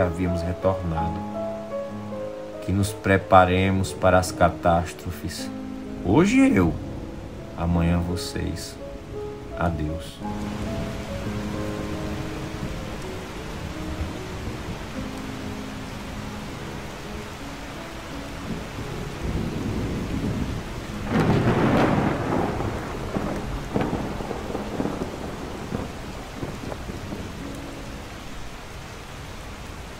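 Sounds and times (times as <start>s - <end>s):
rain falling: 0.0s - 29.9s
thunder rumble: 5.9s - 15.9s, 18.4s - 28.5s
thunder crack: 19.2s - 27.5s.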